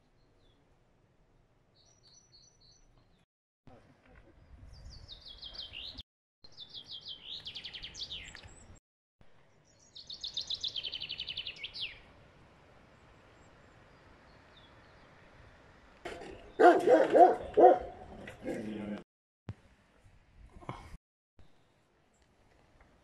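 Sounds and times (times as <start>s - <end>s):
songbird singing: 1.8s - 3.2s, 4.4s - 8.8s, 9.4s - 12.2s, 12.8s - 18.6s.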